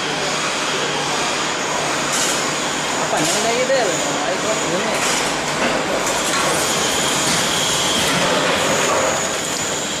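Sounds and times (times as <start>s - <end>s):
packing machine running: 0.0s - 10.0s.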